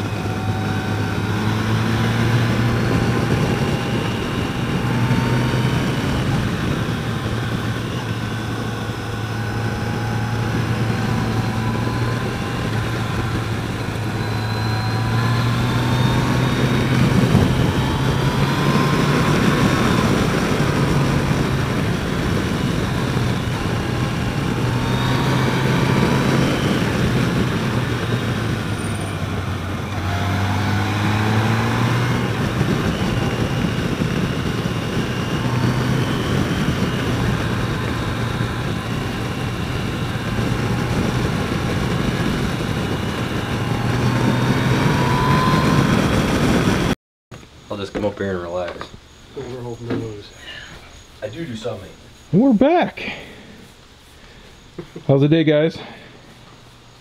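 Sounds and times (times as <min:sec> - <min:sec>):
motorcycle engine revving: 0:00.0 - 0:47.0
wind noise: 0:00.0 - 0:47.0.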